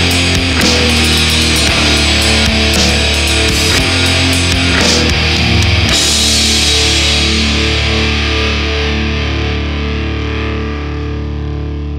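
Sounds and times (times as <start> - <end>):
distorted electric guitar chord: 0.0 - 11.9.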